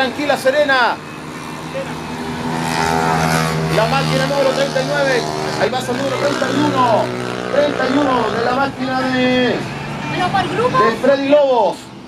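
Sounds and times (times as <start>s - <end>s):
racing motorcycle engine: 0.0s - 11.9s.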